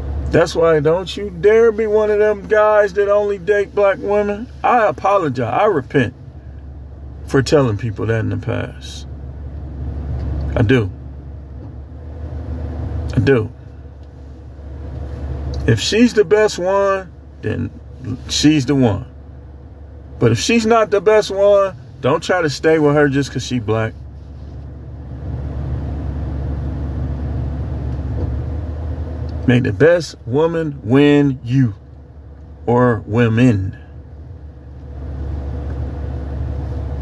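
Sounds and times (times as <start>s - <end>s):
car cabin low rumble: 0.0s - 37.0s.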